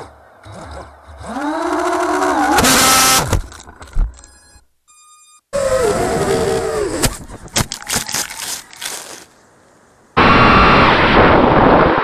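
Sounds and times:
quadcopter motors whining: 0.0s - 3.3s, 5.6s - 7.2s
loud burst of noise: 10.2s - 12.0s.

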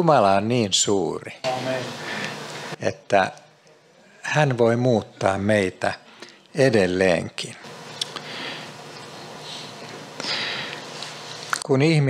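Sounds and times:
man breathing in: 2.0s - 2.4s, 8.1s - 8.8s, 9.4s - 11.0s.

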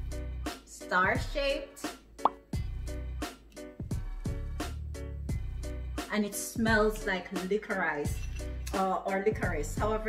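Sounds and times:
background music with bass: 0.0s - 7.1s.

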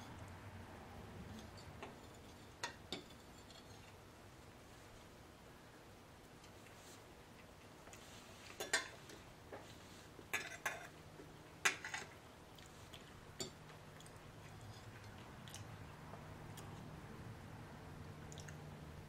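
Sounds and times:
faint low hum: 0.0s - 19.0s
fork scraping on plate: 10.3s - 11.0s.

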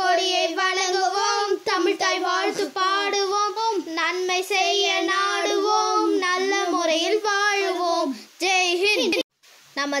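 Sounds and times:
child singing: 0.0s - 9.2s.

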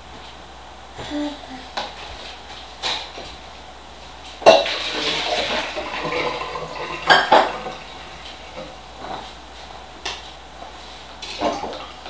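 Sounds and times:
dishes and cutlery clattering: 11.2s - 12.0s.

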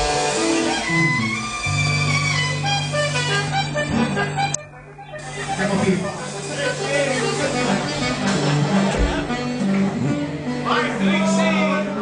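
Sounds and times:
live band playing: 0.0s - 12.0s
voices: 5.0s - 12.0s.

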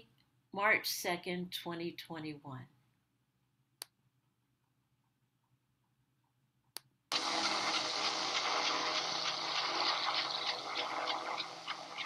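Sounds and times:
steady rushing noise: 7.1s - 12.0s.

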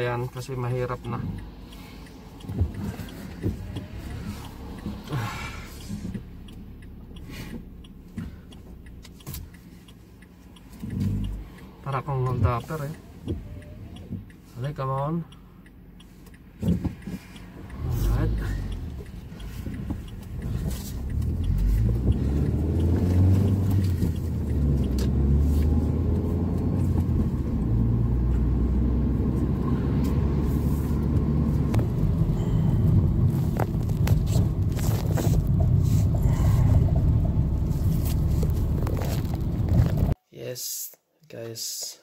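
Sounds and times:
car engine and road noise: 0.0s - 40.2s.

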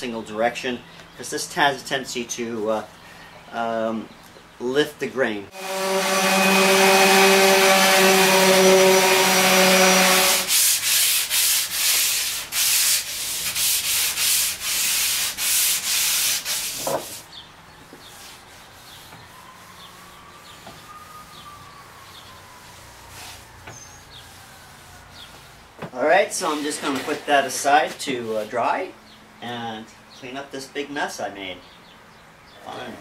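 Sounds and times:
orbital sander on wood: 5.5s - 17.2s
hand sanding wood: 5.5s - 17.3s, 18.0s - 21.6s, 22.4s - 28.6s.

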